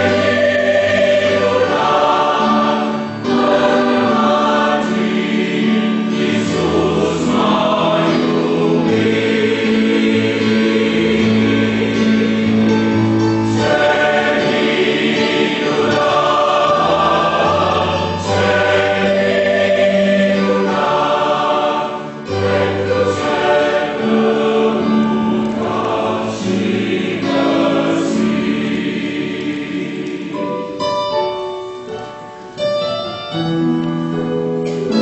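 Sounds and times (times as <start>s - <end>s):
choir singing a hymn: 0.0s - 31.9s.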